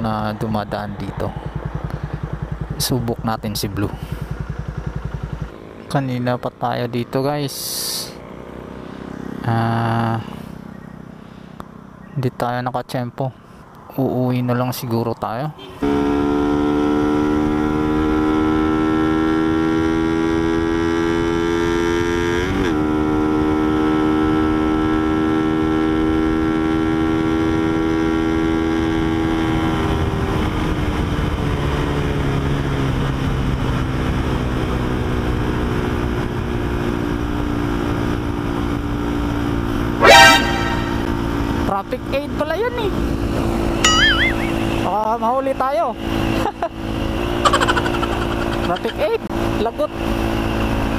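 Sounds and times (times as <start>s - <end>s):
motorcycle engine under throttle: 0.7s - 12.1s, 15.8s - 50.9s
horn toot: 39.9s - 41.3s.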